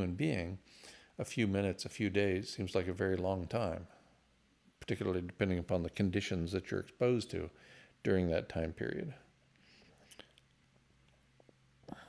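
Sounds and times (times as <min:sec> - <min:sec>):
faint breath: 0:00.6 - 0:01.2, 0:07.5 - 0:08.0, 0:09.6 - 0:10.3.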